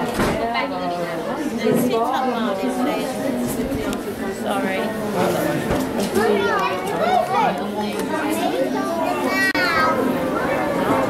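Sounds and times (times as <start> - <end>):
shoppers chattering: 0.0 - 11.0
children's voices: 1.5 - 11.0.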